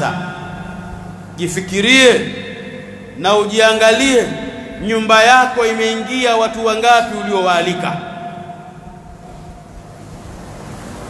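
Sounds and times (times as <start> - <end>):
voice echo: 0.0 - 9.9
steady background hiss: 0.0 - 11.0.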